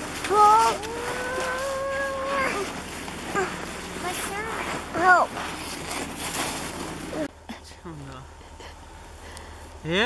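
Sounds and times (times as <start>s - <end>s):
shovel scraping snow: 0.0s - 7.3s
child's voice: 0.2s - 2.7s, 3.3s - 5.3s.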